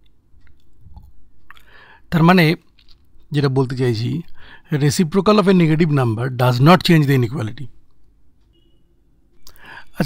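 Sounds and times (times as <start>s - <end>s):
low background hum: 0.0s - 10.0s
mouth and handling noises: 2.6s - 3.3s.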